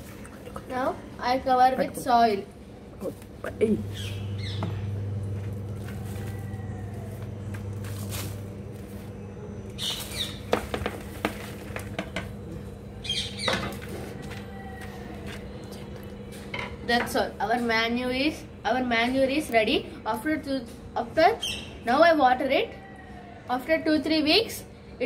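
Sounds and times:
steady low hum: 0.0 - 25.0
soil rustling: 5.4 - 12.0.

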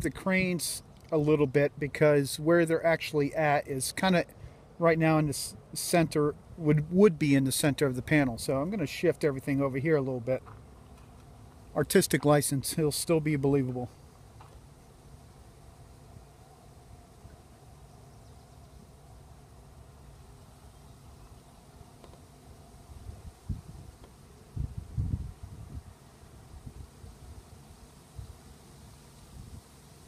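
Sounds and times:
wind rumbling on microphone: 22.9 - 28.4, 29.2 - 29.8.

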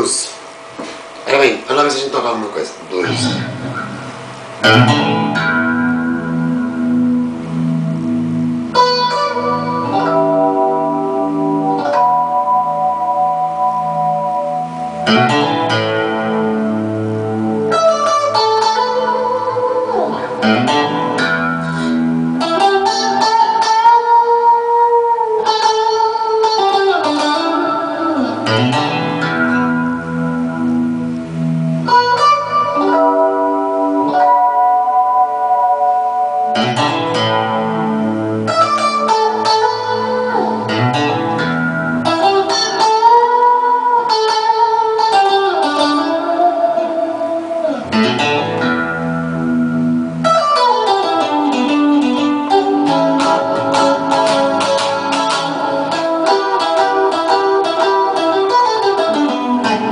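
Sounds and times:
electric guitar blues improvisation: 0.0 - 59.9.

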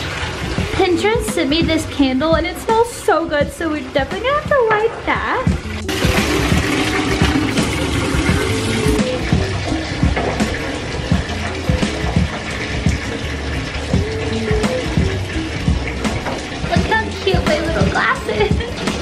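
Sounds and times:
water running into bathtub: 0.0 - 19.0
background music with a beat: 0.2 - 19.0.

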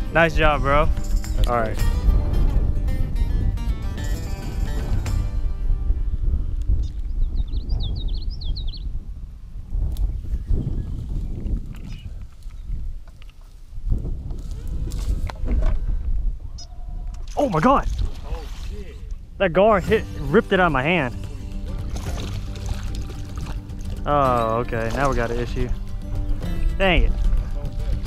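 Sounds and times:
music: 0.0 - 7.0, 19.7 - 28.0
wind buffeting microphone: 0.0 - 28.0
bird chirping: 6.8 - 8.9.

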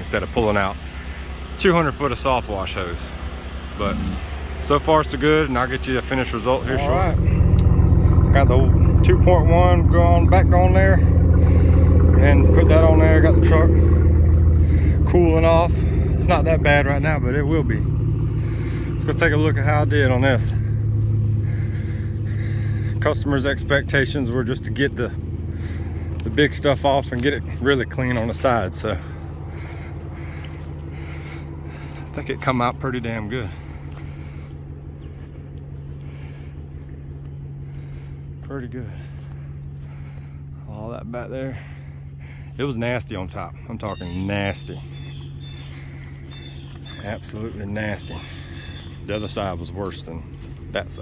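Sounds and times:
engine idling: 0.0 - 51.0.

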